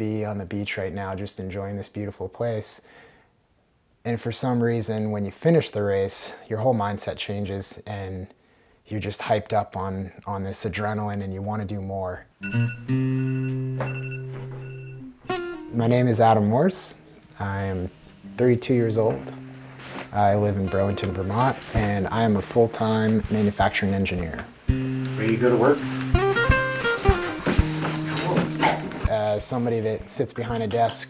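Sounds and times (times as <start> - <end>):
acoustic guitar music: 12.4 - 31.0
dog whining: 28.1 - 29.0.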